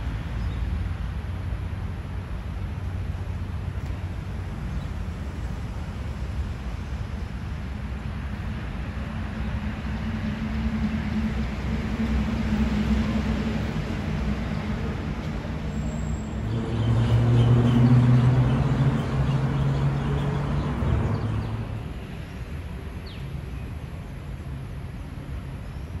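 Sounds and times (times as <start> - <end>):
traffic engine hum: 0.0 - 26.0
vehicle passing close: 9.2 - 22.0.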